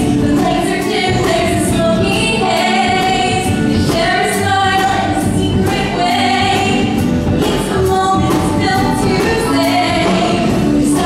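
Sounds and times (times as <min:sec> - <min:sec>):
instrumental accompaniment with beat: 0:00.0 - 0:11.0
voices singing in chorus: 0:00.0 - 0:11.0.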